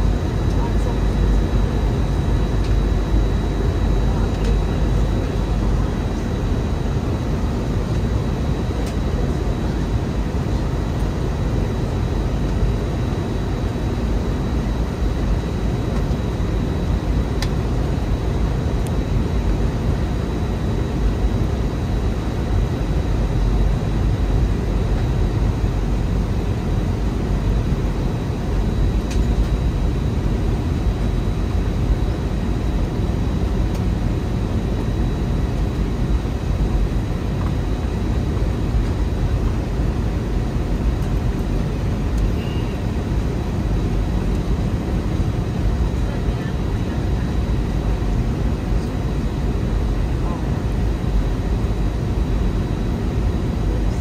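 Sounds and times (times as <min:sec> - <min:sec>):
airliner cabin engine rush: 0:00.0 - 0:54.0
faint high whine: 0:00.0 - 0:54.0.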